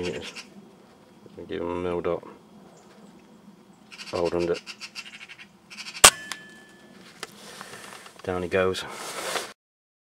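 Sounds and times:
bird chattering rattle: 3.9s - 6.4s.

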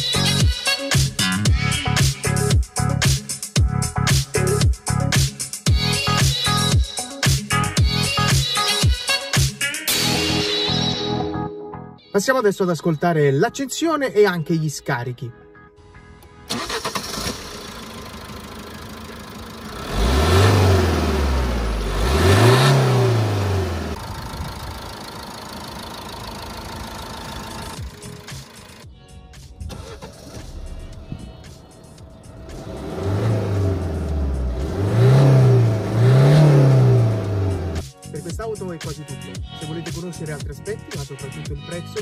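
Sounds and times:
diesel engine starting: 16.2s - 28.8s, 29.6s - 37.8s
diesel engine idling and revving: 16.5s - 28.8s, 29.7s - 37.8s.

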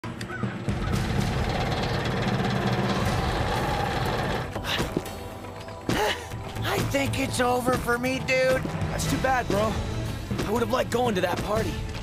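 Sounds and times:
background music: 0.0s - 12.0s
electric fan rattling whir: 0.1s - 4.6s.

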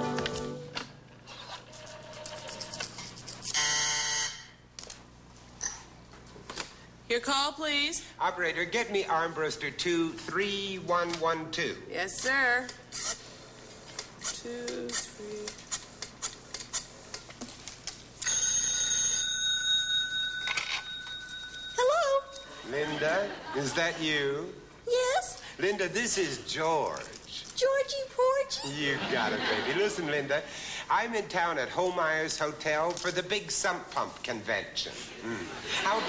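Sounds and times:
telephone switchboard buzzer: 1.8s - 4.6s
telephone bell ringing: 3.5s - 4.6s, 18.2s - 22.6s.

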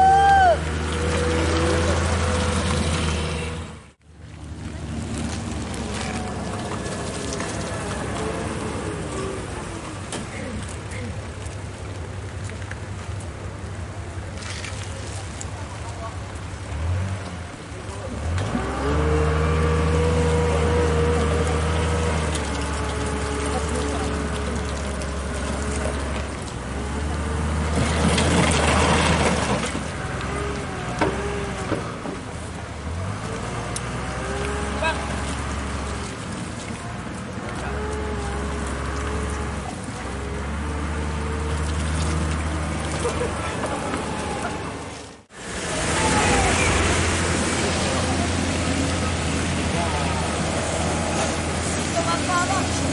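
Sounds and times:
diesel engine droning: 0.0s - 52.9s
people talking: 5.8s - 11.4s, 14.4s - 16.4s, 20.2s - 25.1s, 34.8s - 35.2s, 45.6s - 52.9s
loud rush of noise: 42.6s - 52.9s.

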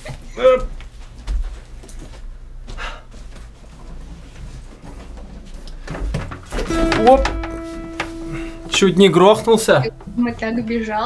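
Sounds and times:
handling knocks and thumps: 4.8s - 8.3s
guitar strings ringing: 6.5s - 11.0s.

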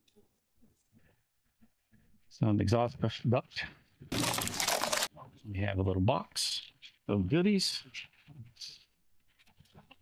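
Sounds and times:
foam pieces rubbing: 4.1s - 5.1s.

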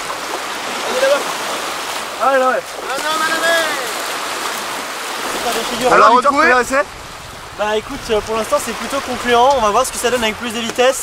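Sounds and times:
surf washing over beach: 0.0s - 11.0s.

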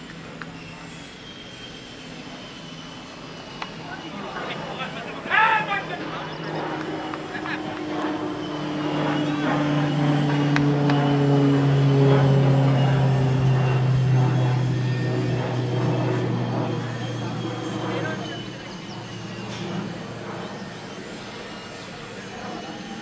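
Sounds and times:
passing engine drone: 0.0s - 23.0s.

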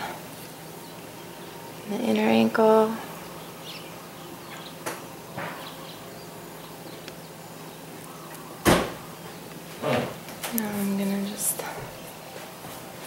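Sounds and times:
low steady background noise: 0.0s - 13.0s
loud sharp thump: 8.6s - 9.0s.

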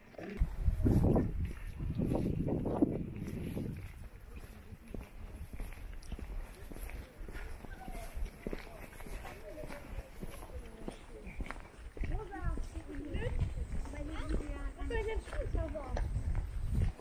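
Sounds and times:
footsteps on paved path: 0.0s - 17.0s
wind rumble on microphone: 0.2s - 9.2s, 11.8s - 17.0s.

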